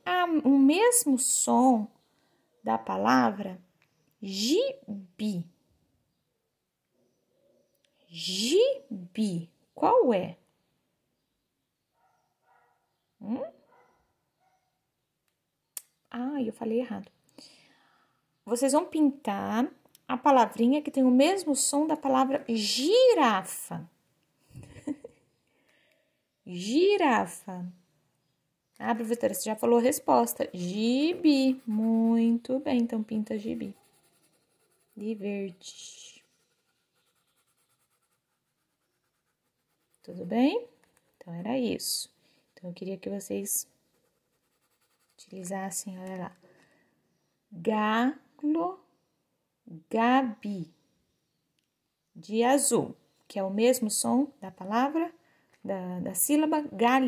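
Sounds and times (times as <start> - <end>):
pencil scratching on paper: 29.6 - 41.2, 43.8 - 45.5.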